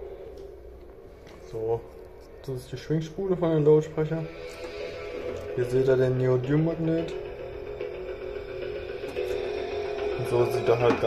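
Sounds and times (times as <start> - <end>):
steady background tone: 0.0 - 11.0.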